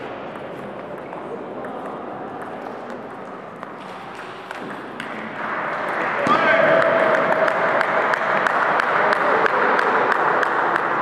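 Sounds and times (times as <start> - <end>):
hall hubbub: 0.0 - 11.0
table tennis balls clicking: 0.2 - 5.3.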